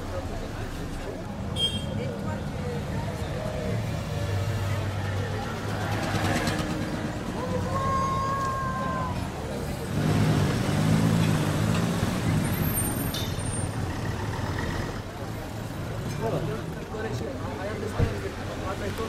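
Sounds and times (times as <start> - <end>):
people talking: 0.0 - 10.8, 15.0 - 19.0.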